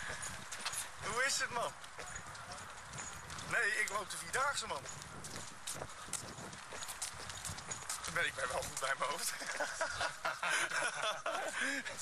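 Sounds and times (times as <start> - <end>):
footsteps on hard path: 0.0 - 12.0.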